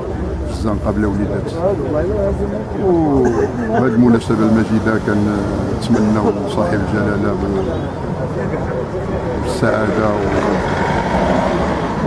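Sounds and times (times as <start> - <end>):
outdoor background noise: 0.0 - 12.0
man speaking: 0.4 - 7.8, 9.3 - 10.7.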